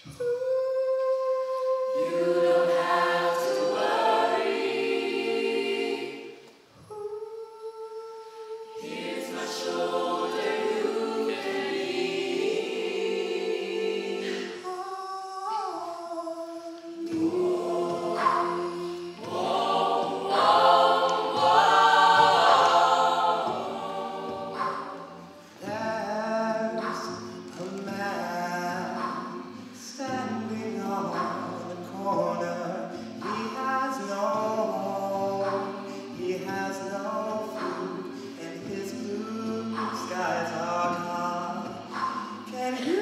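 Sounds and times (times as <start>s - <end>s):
a cappella group singing in harmony: 0.0s - 43.0s.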